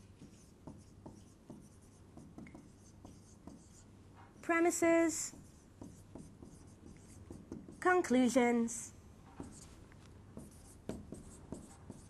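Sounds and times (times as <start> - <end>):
marker writing on whiteboard: 0.0 - 8.2, 9.3 - 12.0.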